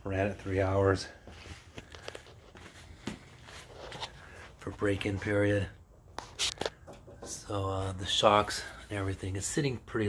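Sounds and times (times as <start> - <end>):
soft footsteps: 0.1 - 7.6.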